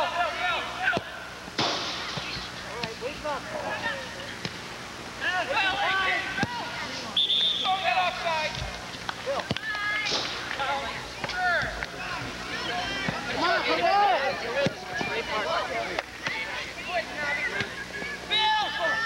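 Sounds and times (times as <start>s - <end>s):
players and spectators shouting: 0.0s - 1.4s, 5.2s - 8.6s, 9.2s - 19.0s.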